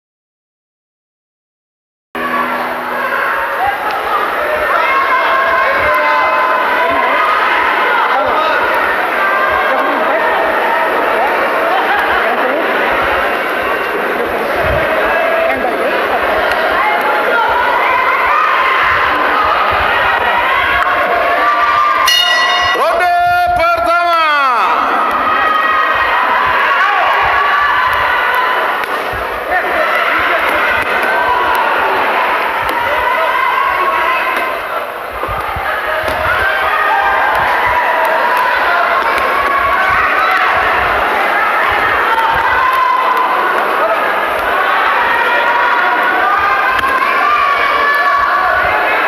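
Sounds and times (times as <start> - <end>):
crowd shouting and cheering: 2.2 - 49.0.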